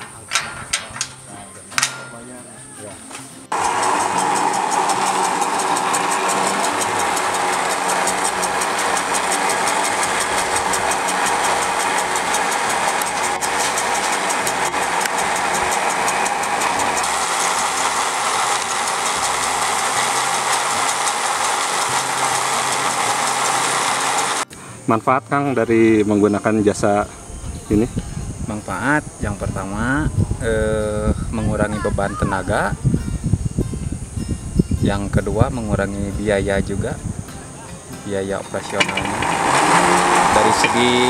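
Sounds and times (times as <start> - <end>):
cable car mechanical rattle: 0.0 - 2.3, 3.5 - 24.4, 36.1 - 41.0
fast ticking of pulleys: 3.5 - 24.4, 38.0 - 41.0.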